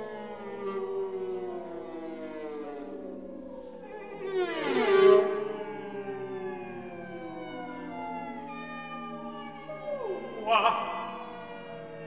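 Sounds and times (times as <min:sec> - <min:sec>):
voices singing glissandi: 0:09.3 - 0:12.0.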